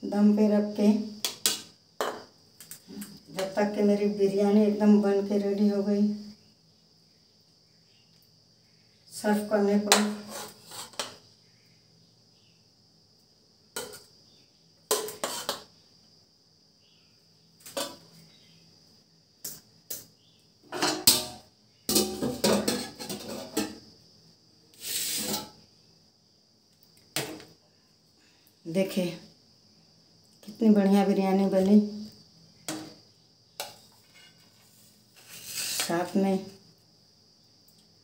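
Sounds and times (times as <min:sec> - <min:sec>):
metal ladle scraping a pot: 0:09.9 - 0:11.2, 0:14.9 - 0:15.6, 0:20.7 - 0:23.8, 0:24.8 - 0:25.6, 0:33.6 - 0:36.0.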